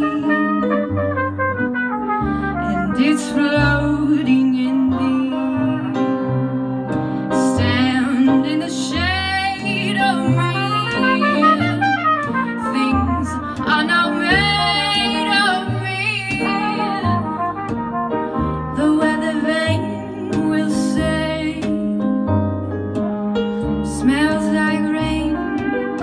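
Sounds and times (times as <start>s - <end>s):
trumpet solo: 0.0s - 6.3s, 10.0s - 21.6s, 24.7s - 26.0s
bass line: 0.0s - 26.0s
jazz band playing: 0.0s - 26.0s.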